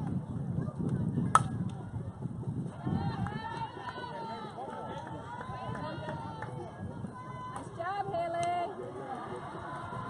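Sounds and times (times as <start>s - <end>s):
spectators chatting: 0.0s - 10.0s
bat striking softball: 1.3s - 1.7s.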